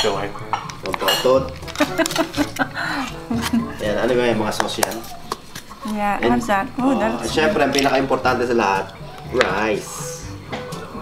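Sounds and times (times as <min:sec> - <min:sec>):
metal spoon clinking on containers: 0:00.0 - 0:02.6
background music: 0:00.0 - 0:11.0.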